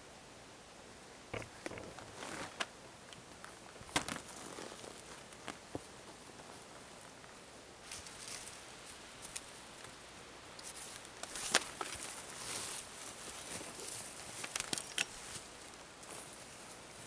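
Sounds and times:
plastic tarp rustling: 2.0 - 2.6, 3.8 - 5.6.

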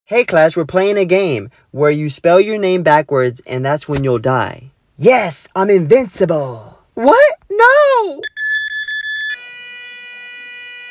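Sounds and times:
high steady beep: 8.2 - 10.9
low buzzy flatline tone: 8.2 - 10.9.

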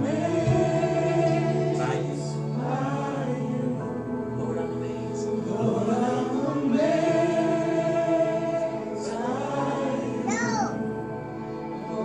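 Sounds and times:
voices singing a worship song: 0.0 - 12.0.

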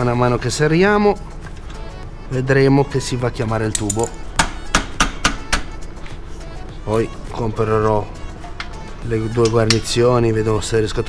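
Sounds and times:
hand tools clinking against metal: 3.6 - 4.3, 8.6 - 10.1.

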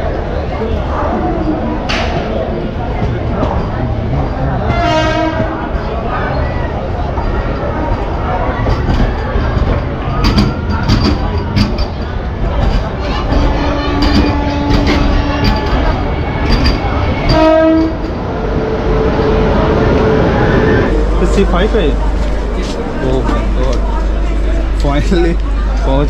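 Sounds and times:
low train rumble: 0.0 - 26.0
short horn blast: 4.7 - 5.6, 17.3 - 18.0
knocks and clatter: 7.9 - 18.2.

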